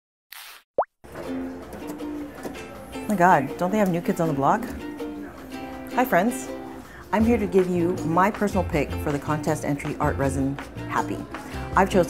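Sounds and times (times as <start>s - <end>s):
light background music: 1.1s - 12.0s.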